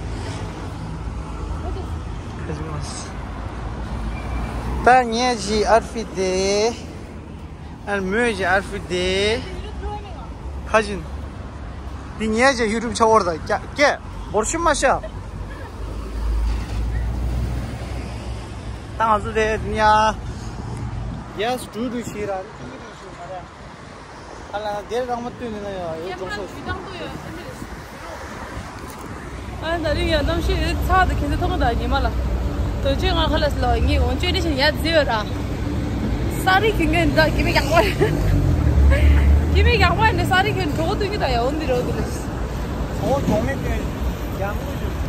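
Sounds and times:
road traffic rumble: 0.0s - 45.0s
woman talking: 29.6s - 32.2s, 32.8s - 35.4s, 36.3s - 38.1s, 39.5s - 42.1s.

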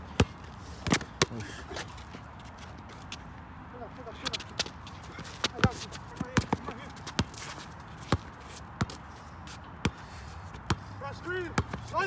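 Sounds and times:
basketball bouncing on concrete: 0.2s - 1.4s, 4.3s - 9.0s, 9.8s - 10.8s, 11.5s - 11.9s.

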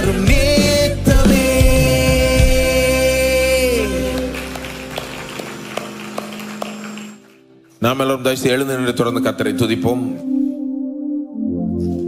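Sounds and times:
worship band closing chord: 1.2s - 10.6s.

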